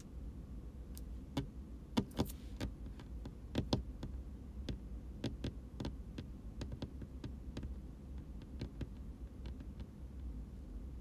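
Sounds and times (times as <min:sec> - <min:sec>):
steady low hum: 0:00.0 - 0:11.0
light clicks and taps: 0:00.9 - 0:10.3.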